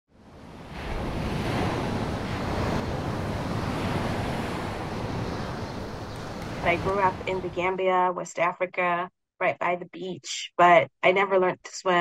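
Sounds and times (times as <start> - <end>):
waves breaking: 0.2 - 7.6.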